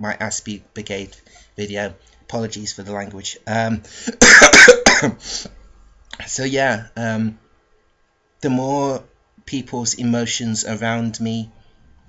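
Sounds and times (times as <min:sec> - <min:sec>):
man coughing: 0:04.0 - 0:05.5.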